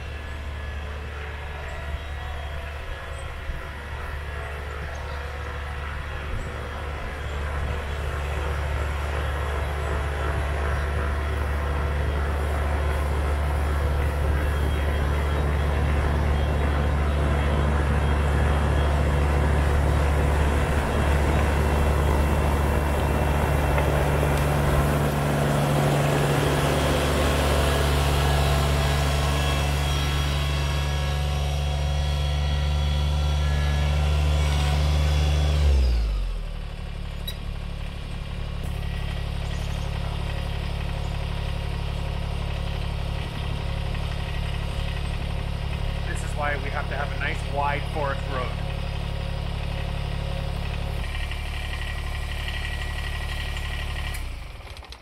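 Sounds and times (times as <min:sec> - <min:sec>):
tractor diesel engine: 0:00.0 - 0:55.0.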